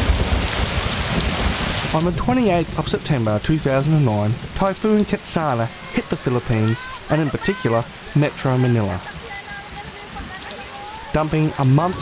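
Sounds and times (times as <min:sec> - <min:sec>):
heavy rain pouring: 0:00.0 - 0:12.0.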